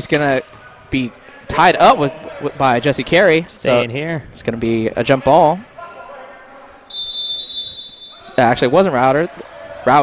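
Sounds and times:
referee's whistle blast: 6.9s - 8.6s.

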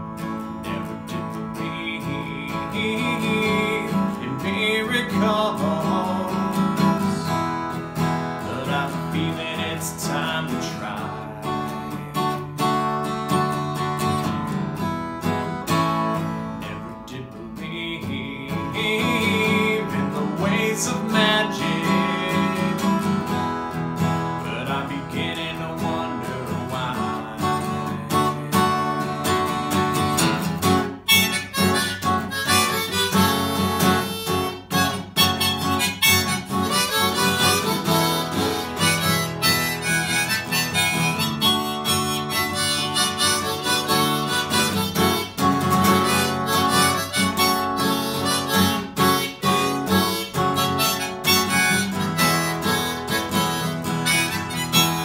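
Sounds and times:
harmonica solo: 0.0s - 16.9s, 18.5s - 55.0s
acoustic guitar strumming: 0.0s - 55.0s.

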